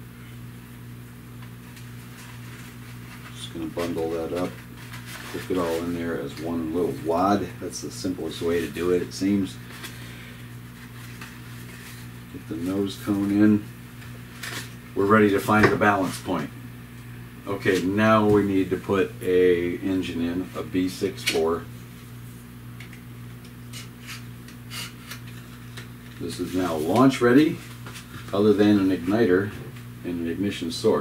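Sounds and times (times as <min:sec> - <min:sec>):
low electrical hum: 0:00.0 - 0:31.0.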